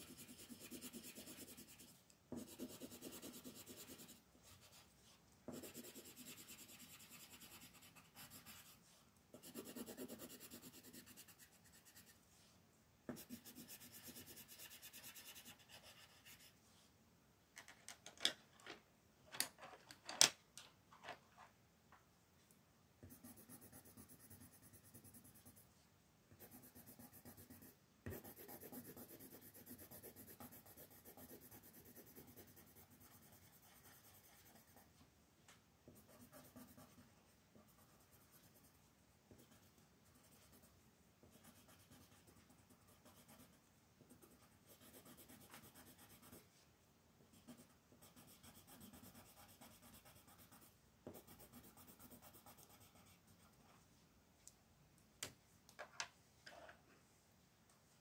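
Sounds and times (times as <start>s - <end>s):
colored pencil scratching on paper: 0.0s - 12.2s, 13.1s - 16.6s, 23.0s - 35.0s, 35.9s - 46.6s, 47.3s - 53.8s.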